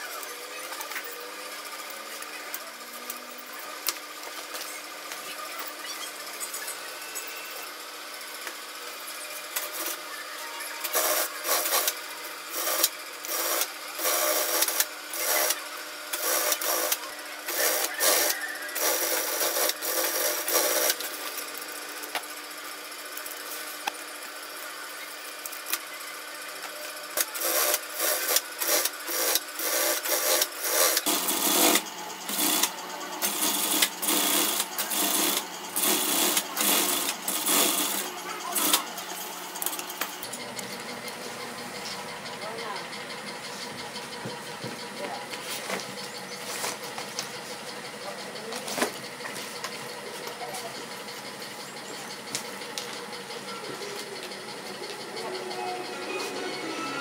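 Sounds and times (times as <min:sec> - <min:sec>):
sewing machine stitching: 0:10.8 - 0:21.6, 0:27.0 - 0:40.5.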